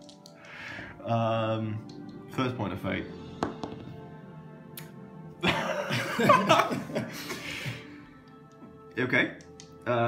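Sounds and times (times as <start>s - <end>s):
background music: 0.0s - 10.0s
people laughing: 5.4s - 7.6s.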